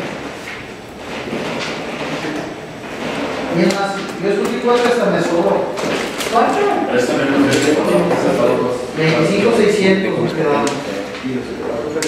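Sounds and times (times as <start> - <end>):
low talk around a table: 1.6 - 12.0
man speaking: 3.5 - 12.0.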